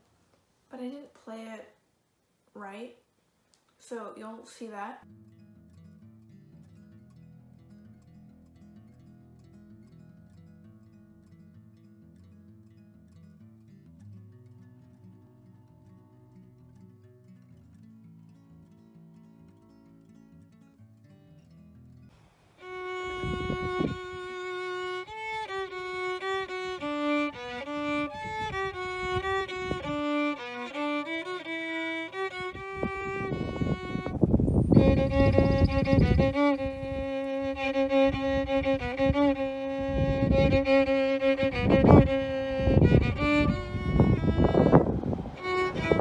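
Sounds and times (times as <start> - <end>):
solo violin melody: 22.6 - 46.0.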